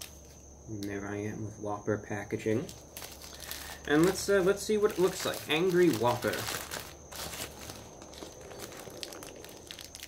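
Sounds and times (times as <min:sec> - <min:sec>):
paper wrapper crinkling: 0:02.6 - 0:10.0.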